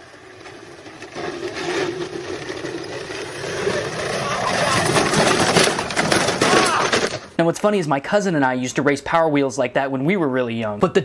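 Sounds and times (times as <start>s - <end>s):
electric toy car whine: 0.0s - 7.3s
people yelling: 4.2s - 5.0s, 6.4s - 7.0s.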